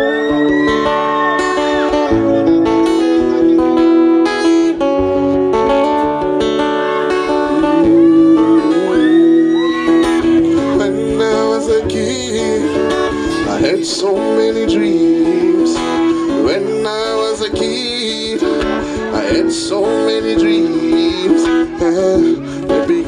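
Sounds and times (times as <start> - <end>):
acoustic guitar: 0.0 - 23.0
man singing: 6.8 - 23.0.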